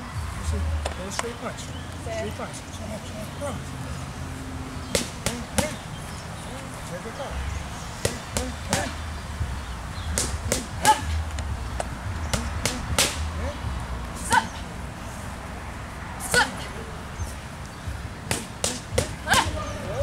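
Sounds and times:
boxing gloves smacking mitts: 4.9s - 5.8s, 8.0s - 9.0s, 10.1s - 13.3s, 18.2s - 19.6s.

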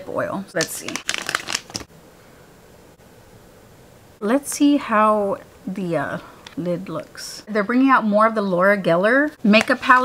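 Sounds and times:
plastic pouch crinkling: 0.6s - 1.9s.

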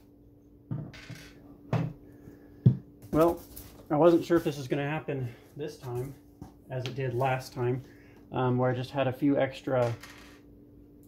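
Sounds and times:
knock on wooden table: 0.7s - 1.0s.

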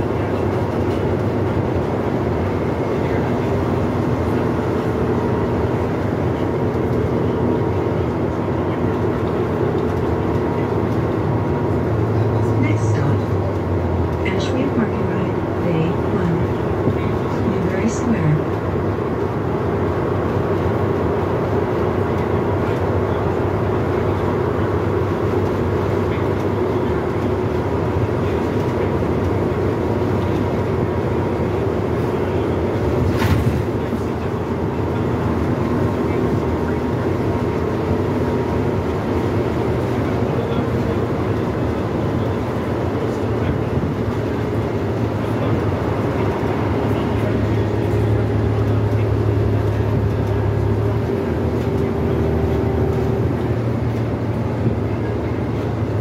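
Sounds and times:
bus engine drone: 0.0s - 56.0s
tyres rumbling on road: 0.0s - 56.0s.

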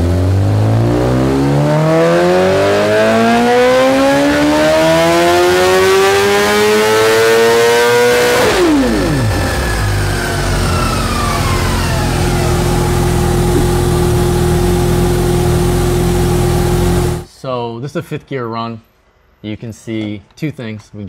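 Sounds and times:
motorcycle engine revving: 0.0s - 17.3s
dyno roller whine: 8.0s - 17.3s.

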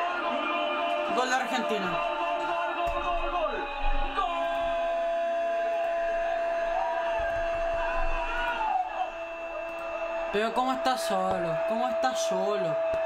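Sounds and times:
broadcast voices: 0.0s - 5.1s, 6.6s - 13.0s.

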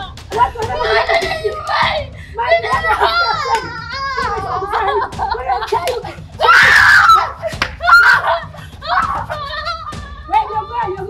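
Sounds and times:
woman crying out: 0.0s - 11.0s
woman screaming: 6.0s - 11.0s.

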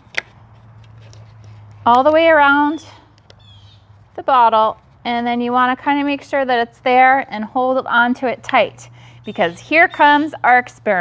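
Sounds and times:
low background hum: 0.0s - 11.0s
woman speaking: 1.9s - 3.0s, 4.2s - 11.0s.

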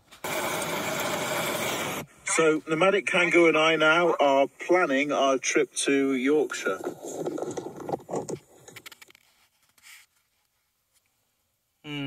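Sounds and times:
loud steady whirring: 0.2s - 2.1s.

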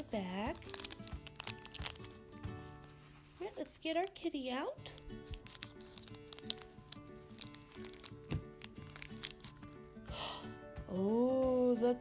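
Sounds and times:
scissors snipping plastic bag: 0.0s - 2.3s, 3.8s - 9.8s
plastic crinkling: 0.0s - 9.9s
soft background music: 0.0s - 12.0s.

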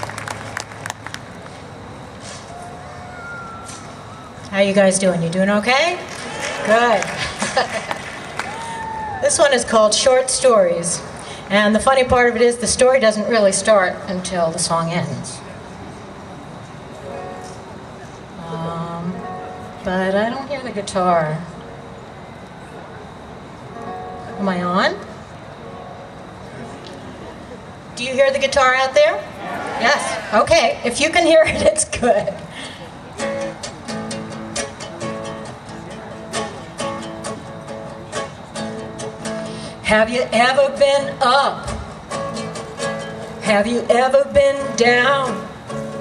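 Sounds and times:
audience applause: 0.0s - 1.6s, 6.0s - 9.2s
concert hall audience noise: 0.0s - 11.1s, 13.8s - 18.4s, 21.2s - 24.4s, 25.0s - 46.0s
murmur of outdoor crowd: 0.0s - 46.0s.

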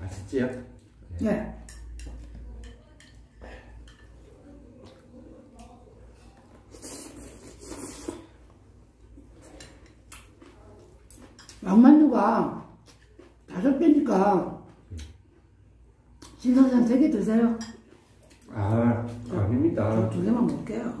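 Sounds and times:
chopsticks clicking on bowls: 1.6s - 4.2s
slurping: 6.6s - 8.5s.

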